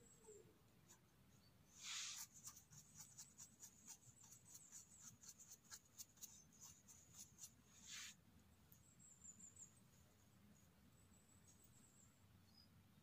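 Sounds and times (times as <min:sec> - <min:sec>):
bristle brush sweeping mushroom: 0:01.7 - 0:08.2.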